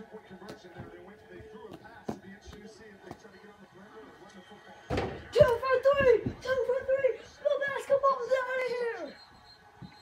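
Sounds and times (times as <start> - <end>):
football commentary: 0.0 - 9.9.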